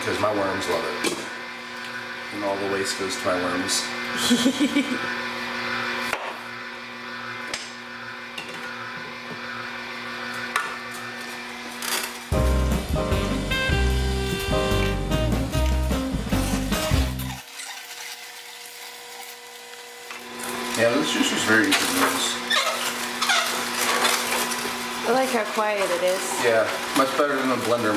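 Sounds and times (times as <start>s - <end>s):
juicer humming: 0.0s - 27.9s
music with heavy bass line: 12.3s - 17.3s.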